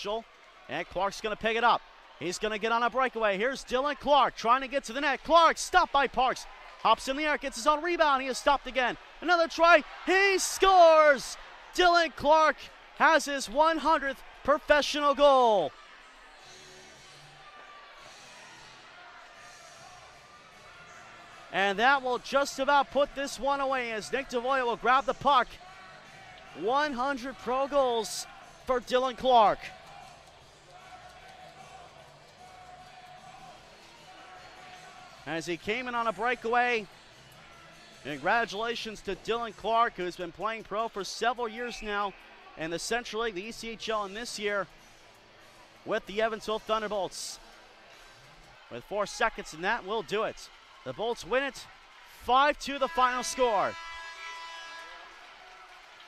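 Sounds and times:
ice arena background noise: 0.0 - 56.0
faint crowd murmur: 15.3 - 21.5.

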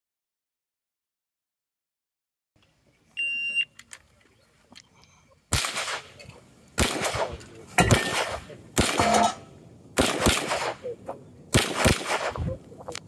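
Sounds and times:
pistol shots: 5.5 - 6.2, 6.8 - 12.5.

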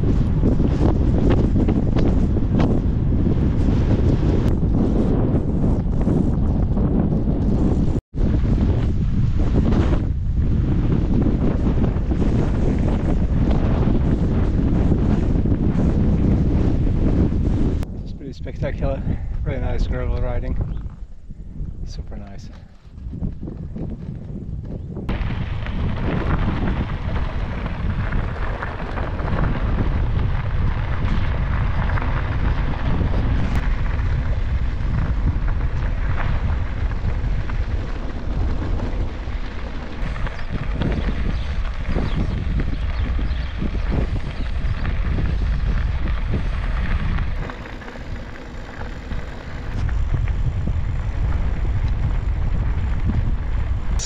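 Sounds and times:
bicycle tyres on gravel: 0.0 - 54.0
wind buffeting microphone: 0.0 - 54.0.

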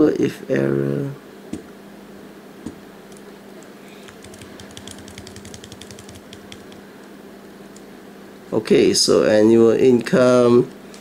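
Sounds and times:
typing on computer keyboard: 4.0 - 6.8.

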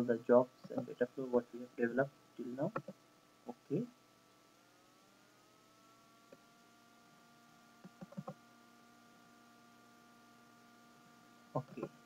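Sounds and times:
steady low hum: 0.0 - 12.0
faint ticks: 2.6 - 3.6, 7.8 - 8.4.

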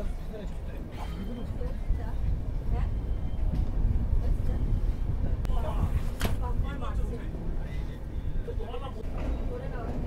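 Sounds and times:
train rumbling from inside coach: 0.0 - 10.0.

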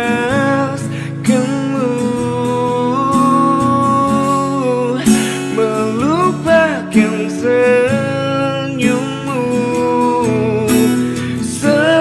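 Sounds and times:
acoustic guitar: 0.0 - 12.0
man singing: 0.0 - 12.0.

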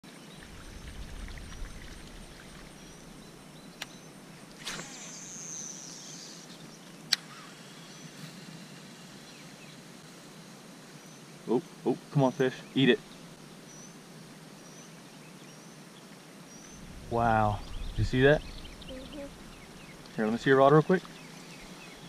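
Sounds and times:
quiet outdoor ambience: 0.0 - 22.0.

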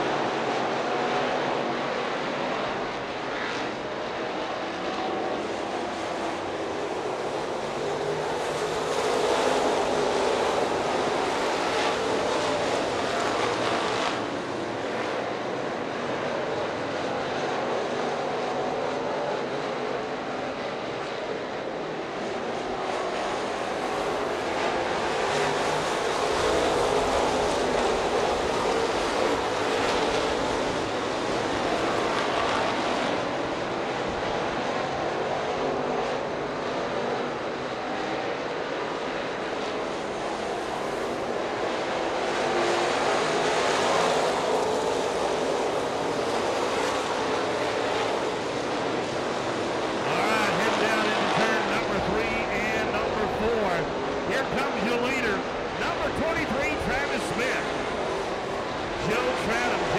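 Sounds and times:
race car engines droning: 0.0 - 59.9
voice over public address: 50.0 - 57.8, 59.0 - 59.9.

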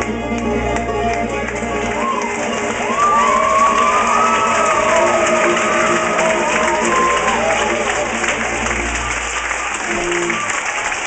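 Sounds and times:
upright bass: 0.0 - 2.0
audience cheering: 1.4 - 11.0.

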